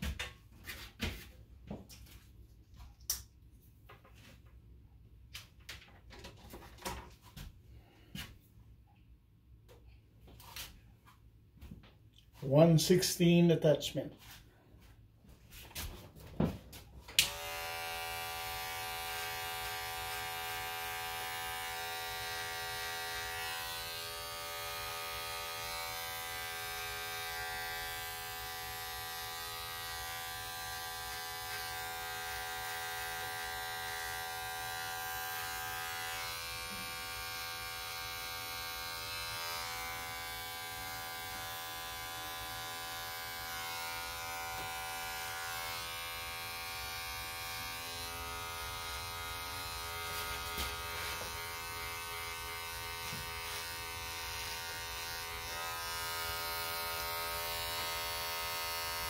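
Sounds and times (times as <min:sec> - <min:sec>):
electric hair clippers buzzing: 0:17.0 - 0:59.0.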